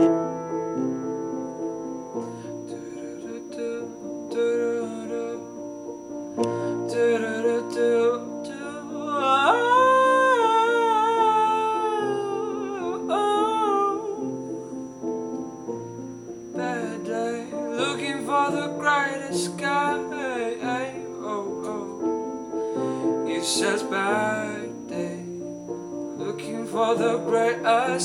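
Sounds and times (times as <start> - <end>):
slow piano accompaniment: 0.0 - 28.0
man singing without words: 2.7 - 5.6, 6.6 - 14.5, 16.6 - 22.2, 23.1 - 25.4, 26.2 - 28.0.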